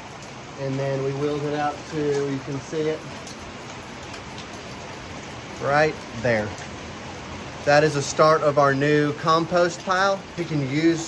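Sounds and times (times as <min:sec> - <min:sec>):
raindrop ticks: 0:00.0 - 0:11.0
steady rain: 0:00.0 - 0:11.0.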